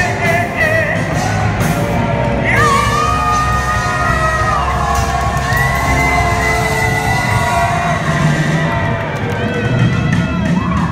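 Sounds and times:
crowd cheering and shouting: 0:00.0 - 0:10.9
rock band sustained notes: 0:00.0 - 0:10.9.

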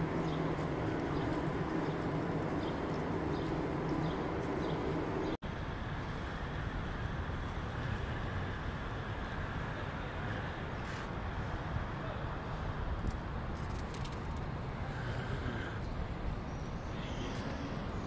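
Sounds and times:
traffic and machinery rumble: 0:00.0 - 0:18.0.

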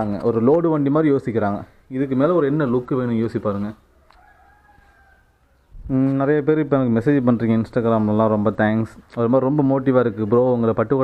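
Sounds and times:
faint rooster crow: 0:03.8 - 0:05.9.

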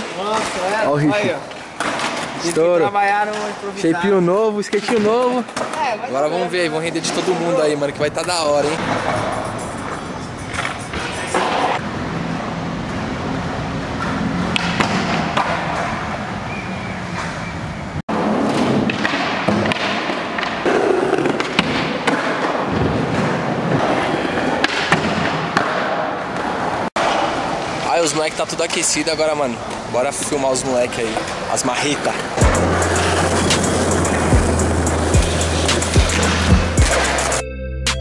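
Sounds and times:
skateboards rolling on concrete: 0:00.0 - 0:04.2, 0:04.8 - 0:37.4
voices: 0:02.4 - 0:11.8
skateboards clacking on ground: 0:06.9 - 0:16.4, 0:18.1 - 0:36.4.

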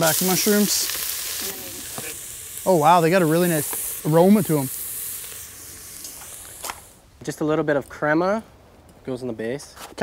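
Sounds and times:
mushrooms sizzling in a pot: 0:00.0 - 0:07.5.

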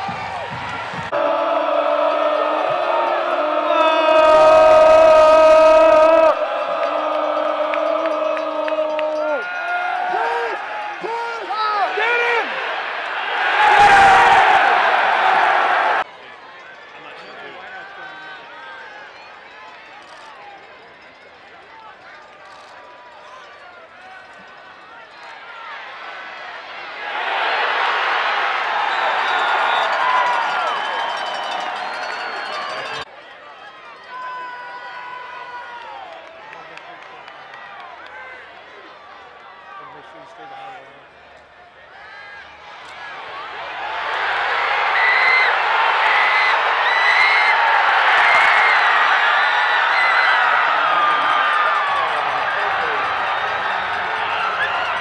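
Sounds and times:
music: 0:00.0 - 0:03.4
crowd: 0:00.0 - 0:55.0.

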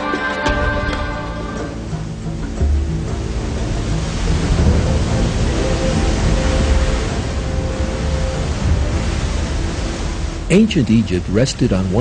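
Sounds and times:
floodwater rushing over rapids: 0:00.0 - 0:12.0.

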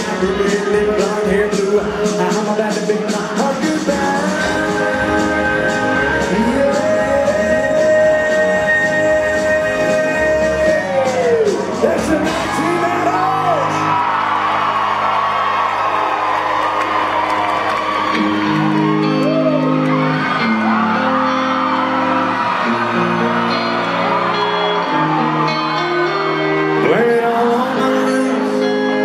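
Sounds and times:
country-rock band playing: 0:00.0 - 0:29.0
audience whooping and shouting: 0:03.4 - 0:29.0.

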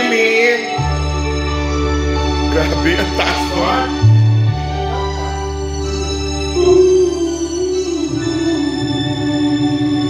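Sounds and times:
man singing with echo: 0:00.0 - 0:00.9
backing music: 0:00.0 - 0:10.0.

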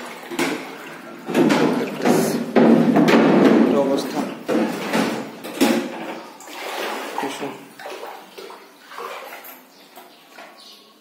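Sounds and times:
water sloshing from wading: 0:00.0 - 0:11.0.

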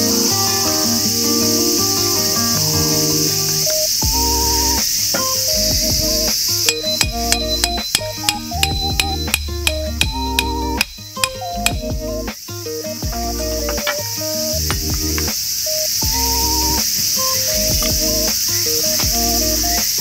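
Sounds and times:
background music: 0:00.0 - 0:20.0
hammer striking metal tent peg: 0:06.7 - 0:11.8.

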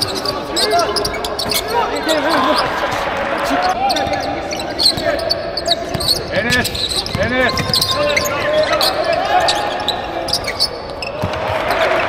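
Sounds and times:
players and spectators voices: 0:00.0 - 0:12.0
basketball bouncing on court: 0:04.9 - 0:09.0, 0:10.3 - 0:11.9.

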